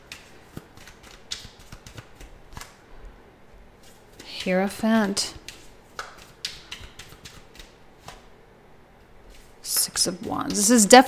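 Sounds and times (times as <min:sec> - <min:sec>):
cards being shuffled: 0:00.0 - 0:02.8, 0:05.4 - 0:08.3.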